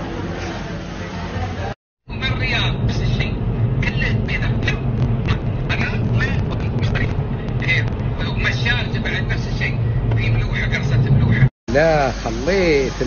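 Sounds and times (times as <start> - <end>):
low machine hum: 0.0 - 12.2.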